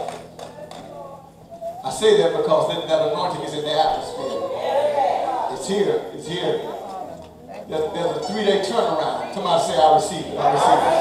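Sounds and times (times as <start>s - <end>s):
faint voices: 0.0s - 11.0s
man preaching loudly: 7.7s - 11.0s.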